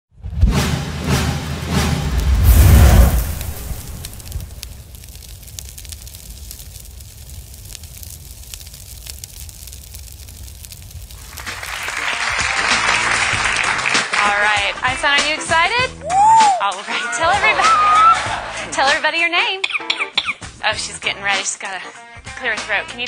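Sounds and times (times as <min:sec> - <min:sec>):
deep boom and whoosh: 0:00.2 - 0:07.2
low rumble: 0:00.2 - 0:13.4
audience applause and cheering: 0:11.1 - 0:15.0, 0:15.9 - 0:16.6, 0:17.4 - 0:18.8.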